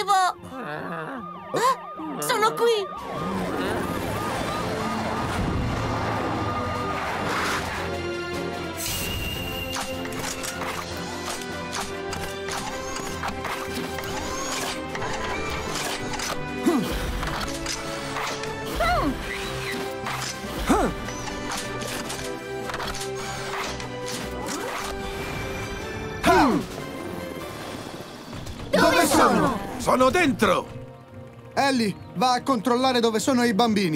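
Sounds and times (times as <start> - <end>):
upbeat cartoon action music: 1.8 - 33.9
mechanical clicks and whirs: 9.7 - 25.1.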